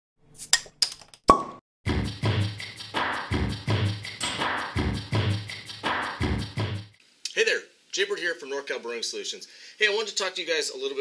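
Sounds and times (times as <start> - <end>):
beat-heavy music: 1.9 - 7.0.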